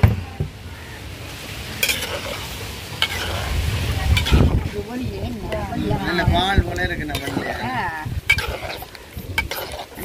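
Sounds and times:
mixture simmering with hiss: 0:00.6 - 0:10.0
ladle clicking against pan: 0:08.3 - 0:09.9.

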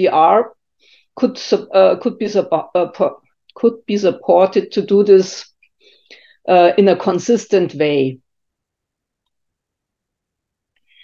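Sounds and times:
person speaking: 0:00.0 - 0:00.6, 0:01.2 - 0:05.5, 0:06.4 - 0:08.2.

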